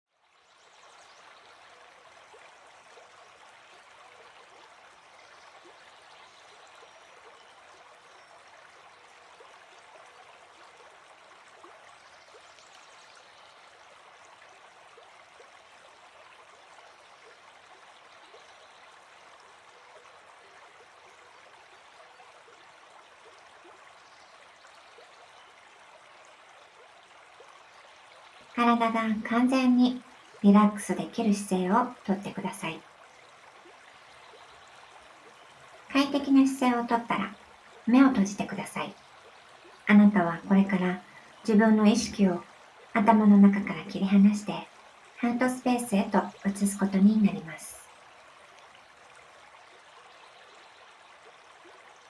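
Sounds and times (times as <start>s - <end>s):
stream flowing: 0.1s - 52.0s.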